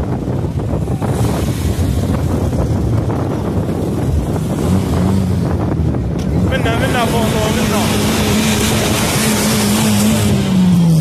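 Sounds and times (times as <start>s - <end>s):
car engines running at low speed: 0.0s - 11.0s
wind buffeting microphone: 0.0s - 11.0s.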